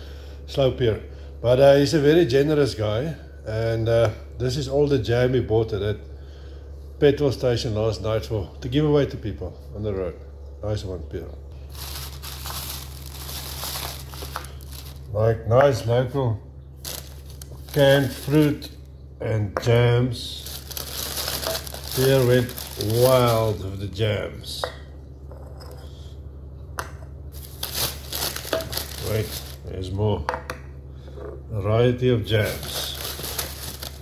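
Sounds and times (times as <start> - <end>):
plastic bag crinkling: 11.6 - 15.1, 16.8 - 18.8, 20.3 - 23.8, 27.4 - 29.7, 32.4 - 34.0
jars being handled: 11.7 - 15.1, 16.8 - 18.7, 20.4 - 23.6, 27.4 - 29.6, 32.4 - 34.0.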